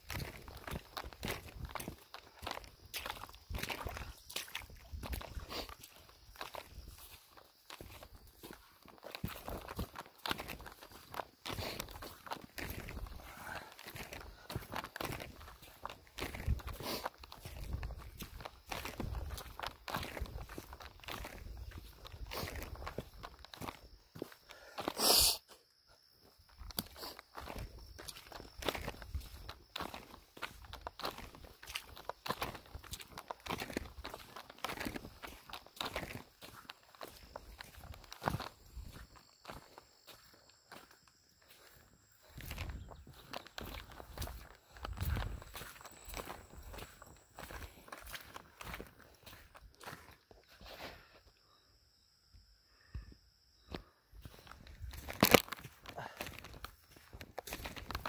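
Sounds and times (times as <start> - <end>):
footsteps on gravel and mud: 0.0 - 25.0, 26.0 - 51.2, 53.6 - 58.0.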